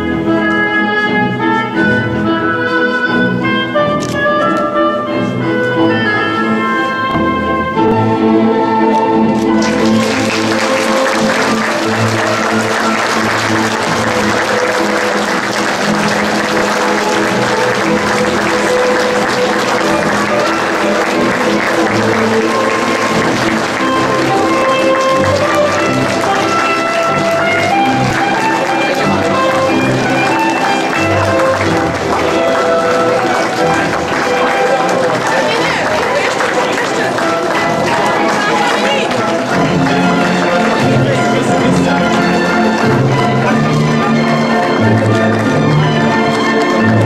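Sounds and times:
music with held notes: 0.0s - 47.0s
crowd clapping: 9.4s - 47.0s.

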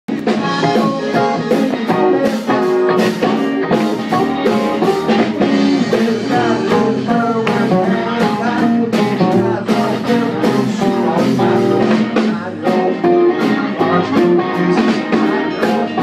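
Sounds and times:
live band playing blues: 0.1s - 16.0s.

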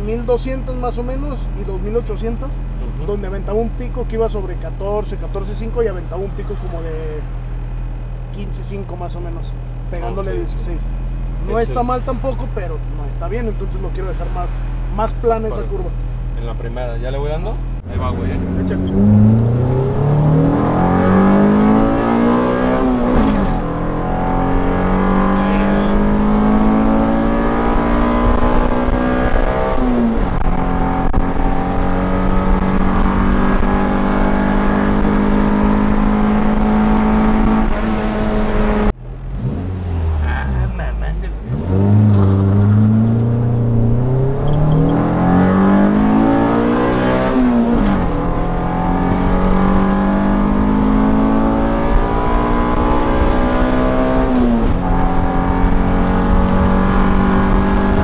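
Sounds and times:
car engine revving through gears: 17.8s - 40.5s, 41.4s - 58.0s.

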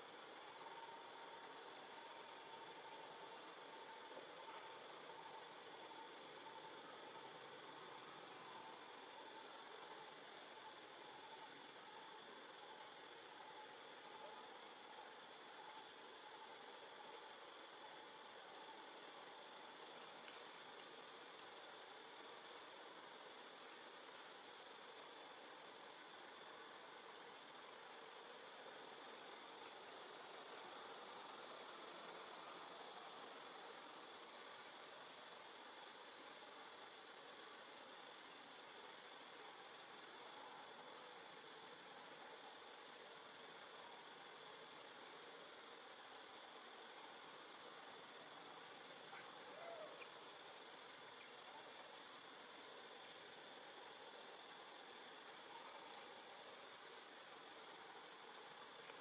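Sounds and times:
insects droning: 0.0s - 59.0s
pulsing insect call: 0.2s - 59.0s.

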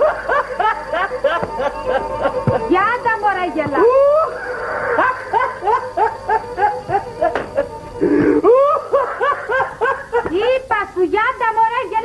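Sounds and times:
man laughing hard: 0.0s - 2.7s, 4.1s - 10.3s.

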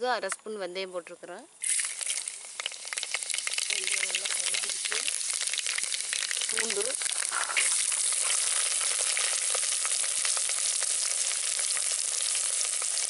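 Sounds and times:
garlic sizzling in hot oil: 1.6s - 13.0s
popping crackles: 1.6s - 13.0s.

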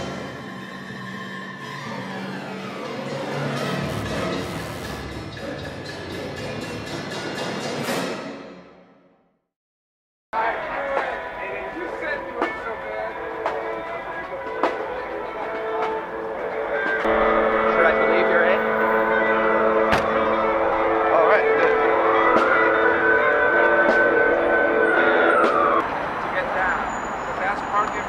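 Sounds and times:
electric guitars playing chords: 10.4s - 25.8s.

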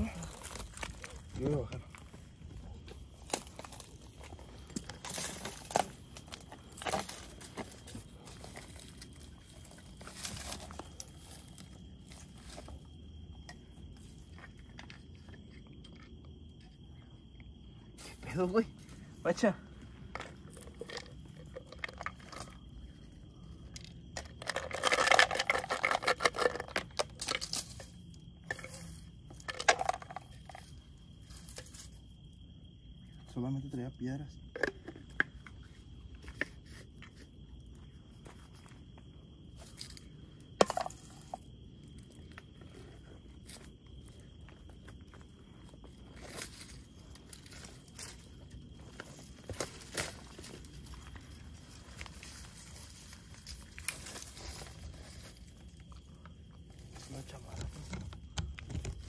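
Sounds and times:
footsteps on rocks and brush: 0.0s - 13.0s
plastic tube container handled: 29.4s - 30.6s.

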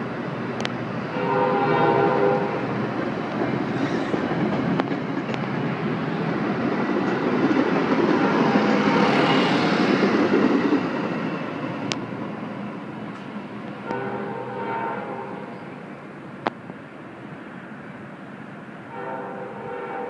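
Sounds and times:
train wheels rushing on rail: 0.0s - 20.0s
train horn chord: 1.1s - 2.7s, 13.8s - 15.8s, 18.9s - 20.0s
clacks over rail joints: 2.8s - 5.8s.

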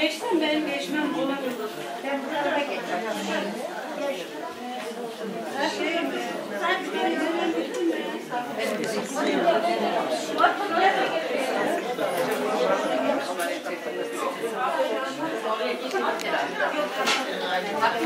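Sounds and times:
overlapping chatter of people: 0.0s - 18.0s.

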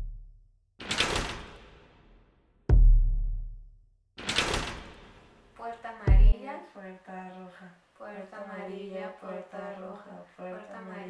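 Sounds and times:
deep impact boom: 1.6s - 3.6s, 6.1s - 6.4s.

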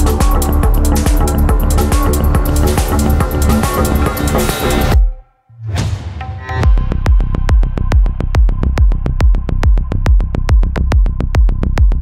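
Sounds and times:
electronic dance music: 0.0s - 5.2s
heavy rolling bass line: 0.0s - 5.2s, 6.6s - 12.0s
kick drum: 0.0s - 5.2s, 5.8s - 12.0s.

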